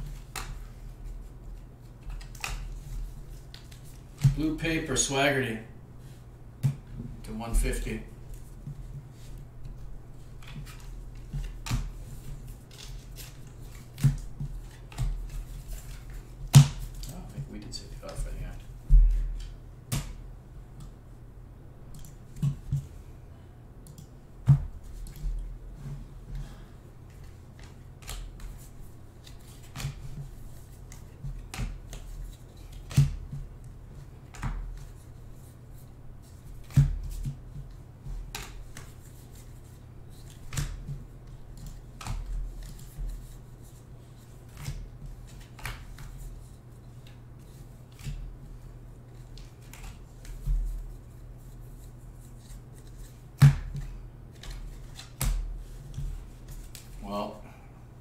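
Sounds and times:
cards being flipped: 0.0 - 4.4, 8.3 - 17.3, 27.1 - 33.4, 34.2 - 35.4, 36.2 - 57.0.

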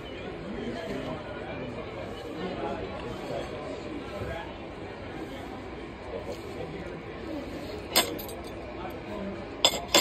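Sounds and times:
voices talking: 0.0 - 9.6.

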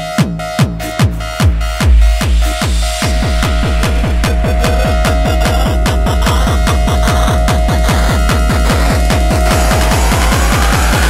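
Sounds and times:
kick drum beat: 0.1 - 11.0
noisy electronic upper layers: 1.6 - 11.0
held synth tone: 2.8 - 11.0.

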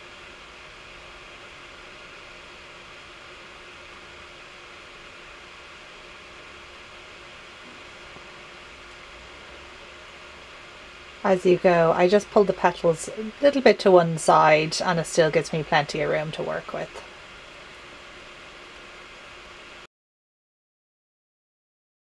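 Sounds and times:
faint low hum: 0.0 - 19.9
room tone hiss: 0.0 - 19.9.

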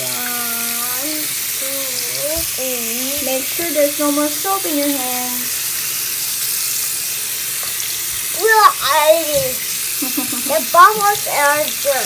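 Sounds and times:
person speaking: 0.0 - 5.5, 8.3 - 9.6, 10.2 - 12.0
hands rinsed under water: 0.0 - 12.0
tap water running into sink: 0.0 - 12.0.

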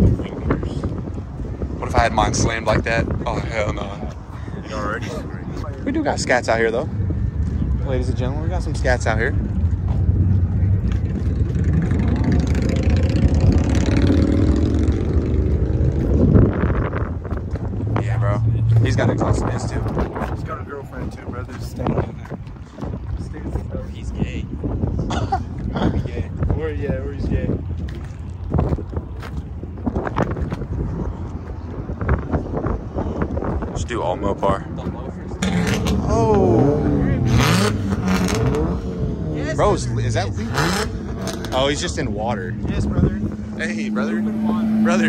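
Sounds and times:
deep car exhaust rumble: 0.0 - 45.0
wind buffeting microphone: 0.0 - 45.0
indistinct voices: 34.9 - 45.0.

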